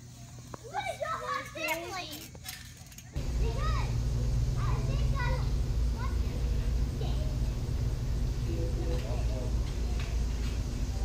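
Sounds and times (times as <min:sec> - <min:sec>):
child talking excitedly: 0:00.6 - 0:02.2, 0:03.3 - 0:04.0, 0:04.6 - 0:07.5
steady low hum: 0:03.2 - 0:11.0.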